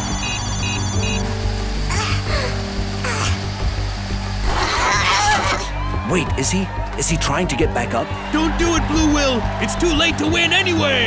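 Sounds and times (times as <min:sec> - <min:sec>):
fast electronic beeping: 0:00.0 - 0:01.4
tense background score: 0:00.0 - 0:08.0.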